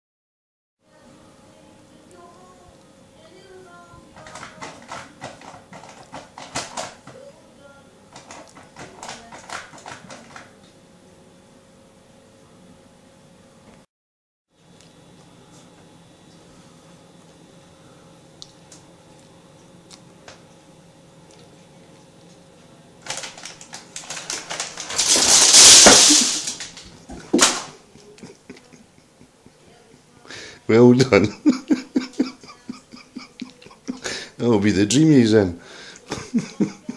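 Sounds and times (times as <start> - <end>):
cat pawing at packets and tins: 4.2 - 7.2, 8.1 - 10.5, 23.0 - 26.8
plastic packet crinkling: 23.0 - 27.6.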